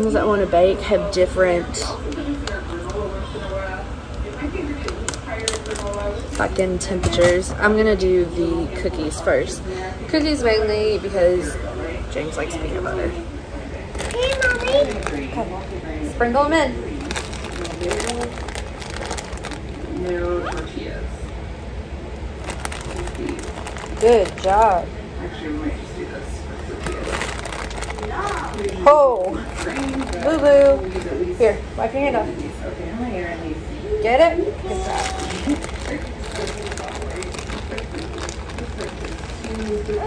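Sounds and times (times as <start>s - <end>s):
quiet speech: 0.0s - 21.4s, 22.0s - 40.0s.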